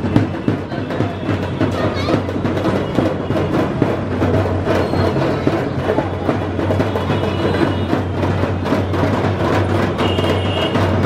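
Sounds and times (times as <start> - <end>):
loud dense drumming and music: 0.0 - 11.0.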